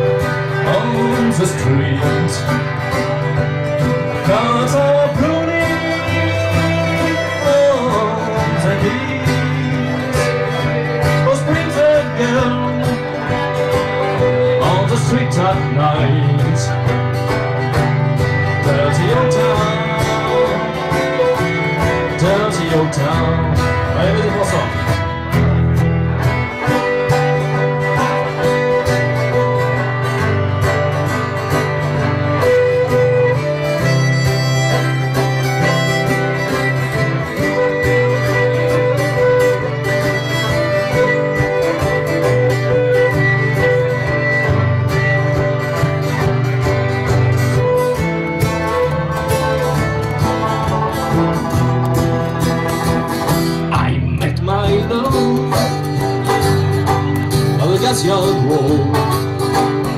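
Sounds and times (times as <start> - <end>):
banjo: 0.0 - 59.9
bass notes: 0.0 - 59.9
fiddle: 0.0 - 59.9
strummed guitar: 0.0 - 59.9.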